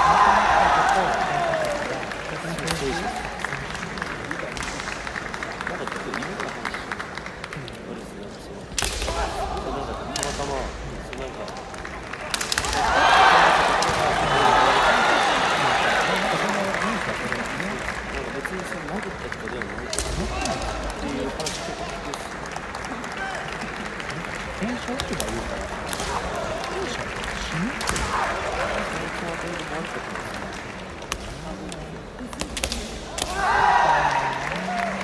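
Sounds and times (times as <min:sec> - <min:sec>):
fighters shouting: 0:12.5 - 0:16.1, 0:25.6 - 0:28.8, 0:33.1 - 0:35.0.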